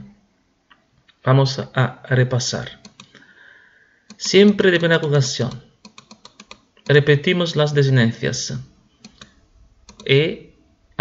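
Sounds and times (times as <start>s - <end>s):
man speaking: 1.2s - 2.9s, 4.1s - 5.7s, 6.9s - 8.7s, 10.0s - 10.5s
computer keyboard clicks: 2.8s - 3.2s, 5.5s - 7.0s, 9.0s - 10.1s.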